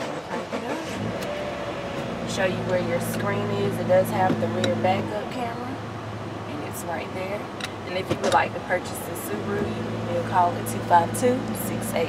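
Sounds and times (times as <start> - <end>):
car engine starting and idling: 0.0 - 12.0.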